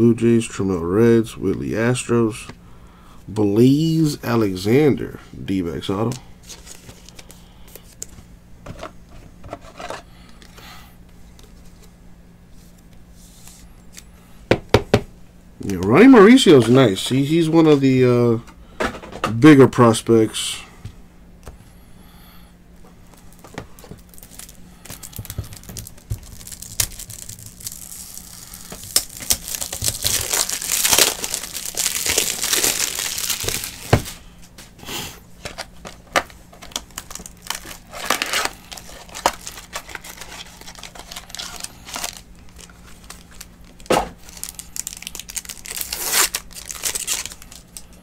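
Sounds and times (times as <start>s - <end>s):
plastic wrap crinkling and tearing: 23.3s - 34.2s, 35.4s - 48.0s.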